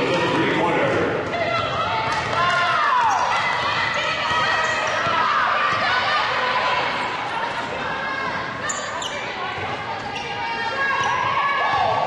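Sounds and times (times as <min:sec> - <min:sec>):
shoe squeaks: 0:08.6 - 0:11.2.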